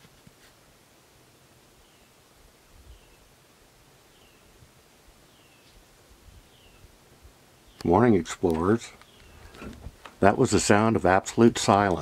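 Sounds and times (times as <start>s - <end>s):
bird calling faintly: 5.2s - 10.1s.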